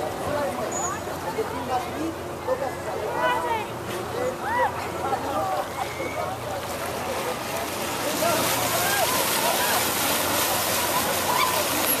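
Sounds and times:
water rushing and splashing: 0.0s - 12.0s.

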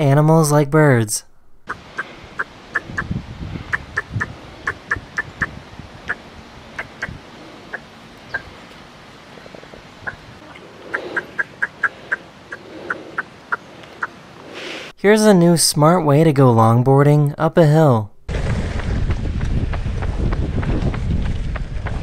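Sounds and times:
high chirping calls: 1.7s - 8.8s, 9.4s - 14.3s
low rumble: 18.3s - 22.0s.

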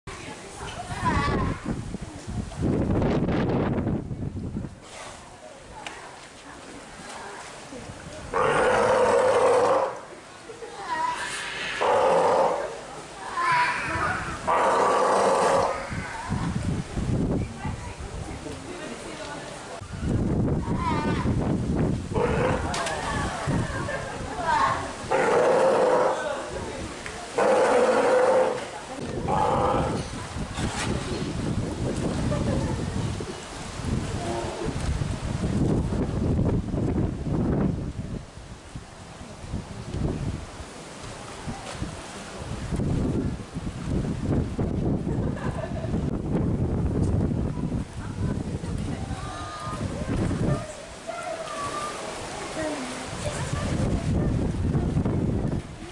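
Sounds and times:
sea lions calling hoarsely: 8.3s - 10.1s, 10.9s - 16.4s, 22.1s - 22.9s, 24.6s - 26.6s, 27.3s - 30.2s
sea lion pulsing grunts: 27.4s - 30.2s.

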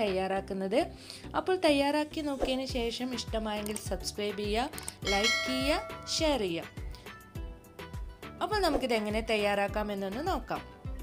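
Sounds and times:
background music: 0.0s - 11.0s
bell chime ding: 5.1s - 6.5s.

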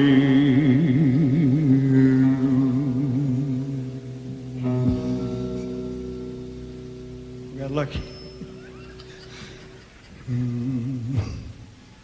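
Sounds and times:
man singing a low note: 10.2s - 11.6s.

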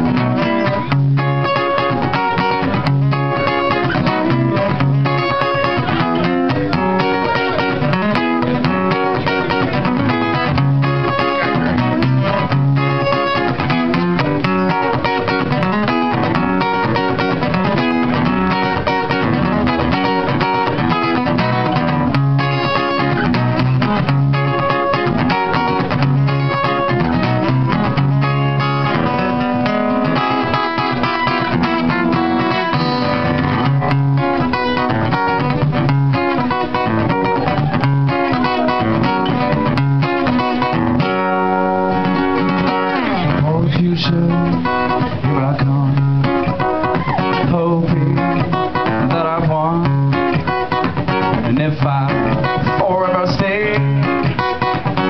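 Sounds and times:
solo acoustic guitar: 0.0s - 55.0s.

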